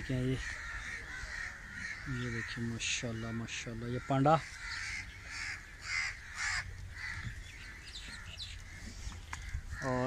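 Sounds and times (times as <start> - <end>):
crows cawing: 0.0 - 10.0
bird chirps: 7.1 - 9.9.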